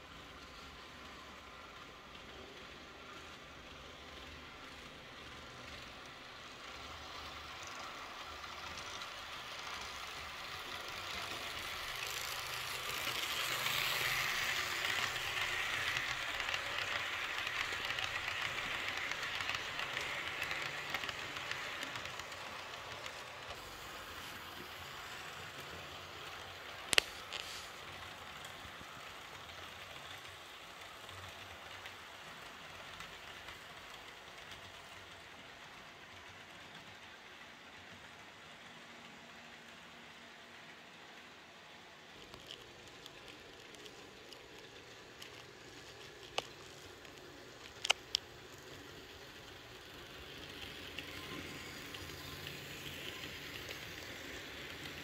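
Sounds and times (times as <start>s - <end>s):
model train rolling on track: 0.0s - 55.0s.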